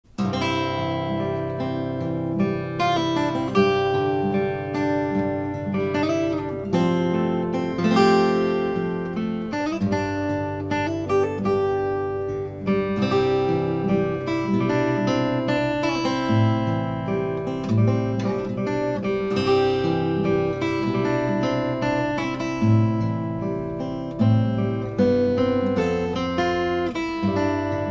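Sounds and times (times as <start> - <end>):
fingerstyle acoustic guitar: 0.1 - 27.9.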